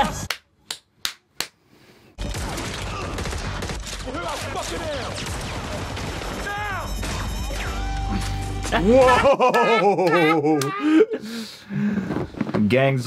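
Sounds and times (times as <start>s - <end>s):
rapid gunfire: 2.2s - 7.8s
voices: 8.8s - 11.4s.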